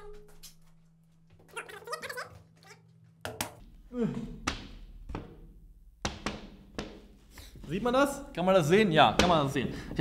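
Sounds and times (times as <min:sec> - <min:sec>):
board knocking and bumping: 0:04.4 - 0:07.3.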